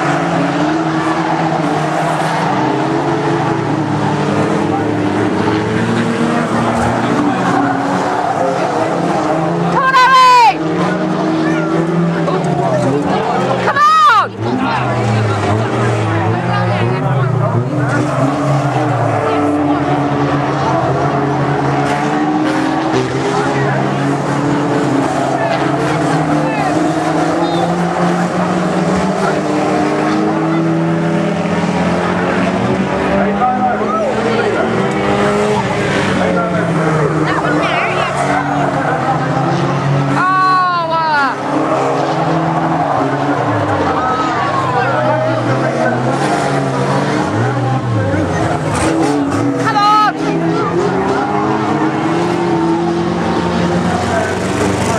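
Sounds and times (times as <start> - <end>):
racing car engines revving: 0.0 - 54.9.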